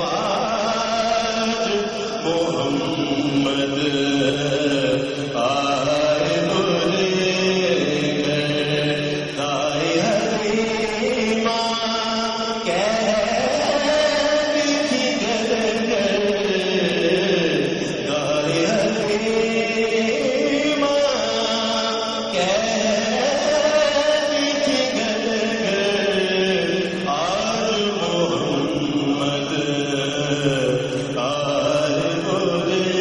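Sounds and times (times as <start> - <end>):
man singing long held notes: 0.0 - 33.0.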